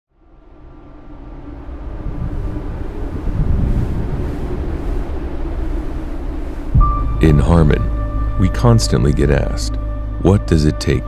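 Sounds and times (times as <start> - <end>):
faint hum: 0.2 - 10.2
low industrial rumble: 0.2 - 10.8.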